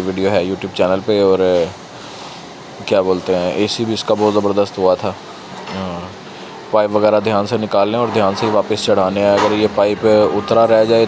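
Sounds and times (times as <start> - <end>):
man speaking: 0.0 - 1.8, 2.8 - 11.0
faint background noise: 0.0 - 11.0.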